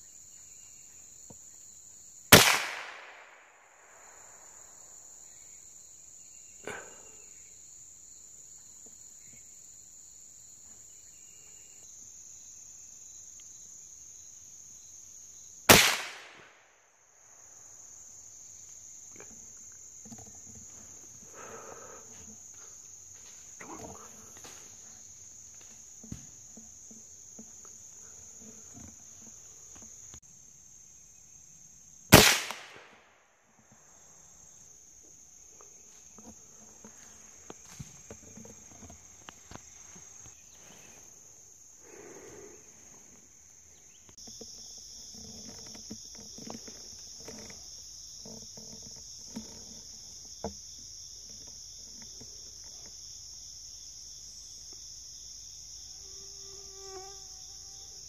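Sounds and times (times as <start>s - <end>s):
high-pitched insect chorus: 0.0s - 58.0s
rifle gunshot: 2.3s - 3.4s, 15.7s - 16.6s, 32.1s - 33.1s.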